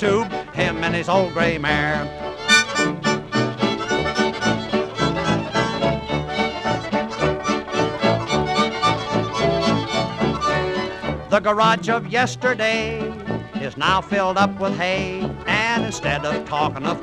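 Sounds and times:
small band playing country music: 0.0 - 17.0.

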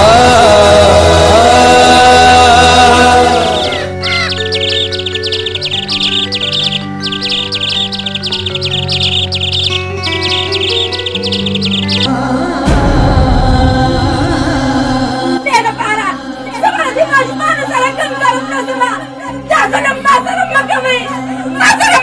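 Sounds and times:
small birds chirping: 3.2 - 12.1.

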